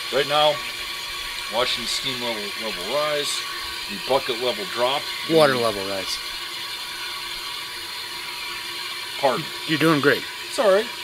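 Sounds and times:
steam injector hissing: 0:00.0 - 0:11.0.

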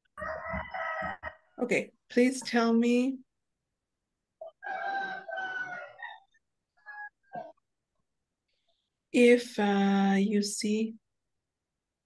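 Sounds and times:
rooster crowing: 0:00.2 - 0:01.5, 0:04.4 - 0:07.4.

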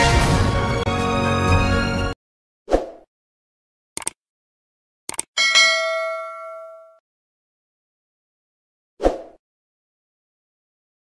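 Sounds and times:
notification bell ding: 0:05.4 - 0:07.0.

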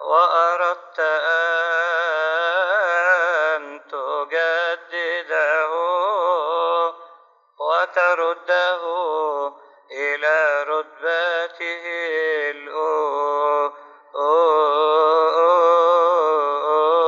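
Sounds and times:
man chanting a hymn: 0:00.0 - 0:07.0, 0:07.6 - 0:17.0.

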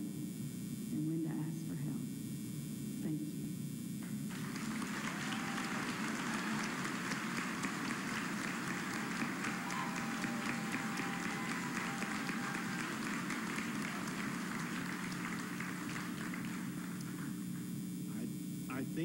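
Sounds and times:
large audience applauding: 0:04.3 - 0:17.6.

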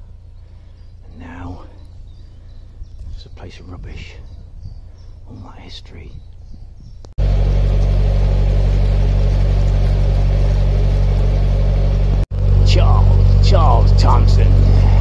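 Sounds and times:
boat engine droning: 0:07.2 - 0:15.0.

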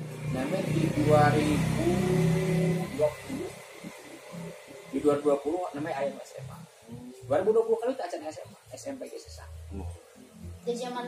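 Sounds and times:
man speaking: 0:00.4 - 0:03.6, 0:05.0 - 0:06.6, 0:07.2 - 0:10.0.

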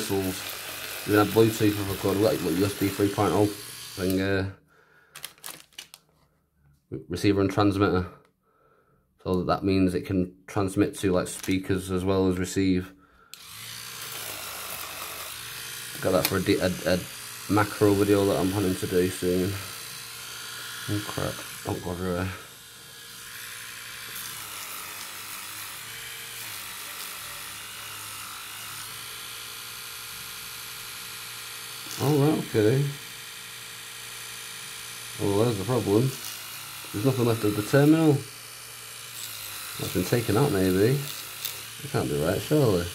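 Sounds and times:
electric toothbrush running: 0:00.0 - 0:04.4, 0:13.3 - 0:42.9.

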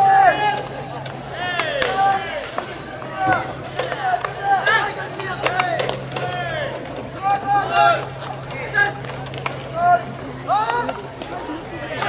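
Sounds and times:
players shouting drawn-out calls: 0:00.0 - 0:12.0
ball striking gloves: 0:01.6 - 0:06.3.

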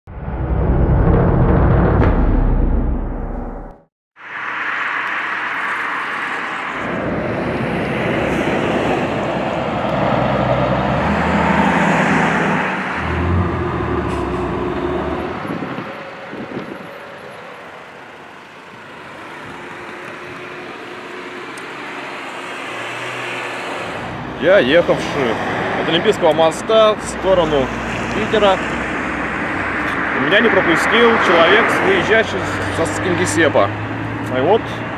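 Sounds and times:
vehicles driving by at speed: 0:04.2 - 0:34.9.

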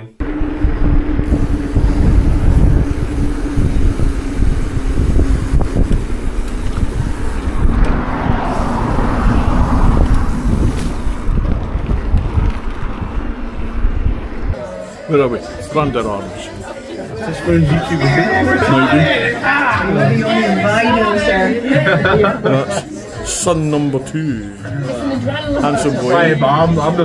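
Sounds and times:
steady low hum: 0:00.0 - 0:14.6
wind rumbling on microphone: 0:00.2 - 0:14.6.

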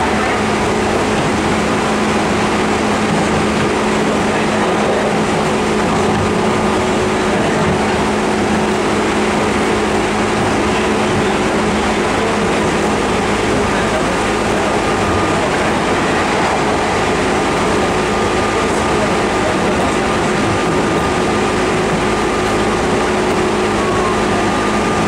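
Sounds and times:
steady train hum: 0:00.0 - 0:25.0
train wheels rumbling on rail: 0:00.0 - 0:25.0.

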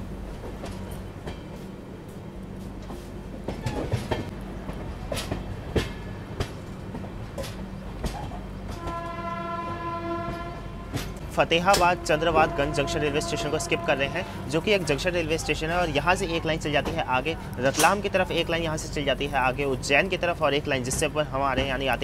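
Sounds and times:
train rumble: 0:00.0 - 0:22.0
train horn: 0:08.7 - 0:14.6.

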